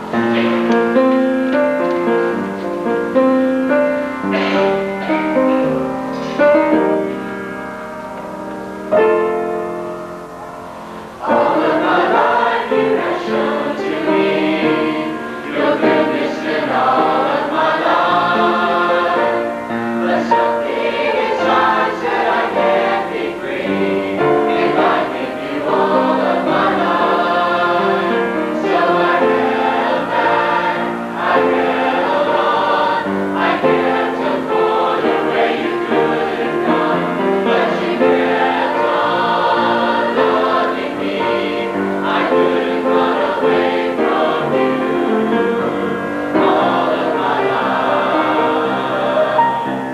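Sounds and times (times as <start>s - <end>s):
girls' choir singing an anthem: 0.0s - 2.4s, 3.2s - 7.4s, 11.2s - 49.8s.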